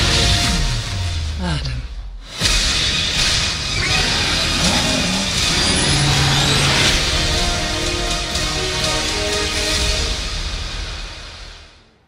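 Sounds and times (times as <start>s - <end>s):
trailer music: 0.0s - 12.0s
dense engine-like rush: 4.1s - 8.8s.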